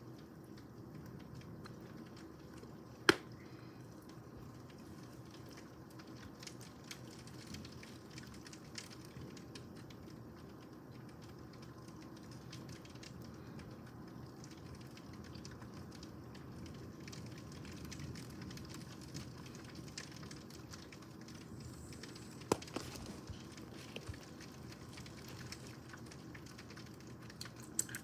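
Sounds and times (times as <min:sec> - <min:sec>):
rain hiss through window: 0:00.0 - 0:28.0
raindrops ticking: 0:00.0 - 0:28.0.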